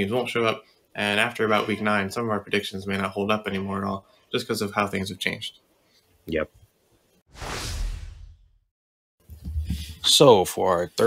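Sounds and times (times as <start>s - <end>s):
whoosh sound effect: 7.3s - 8.6s.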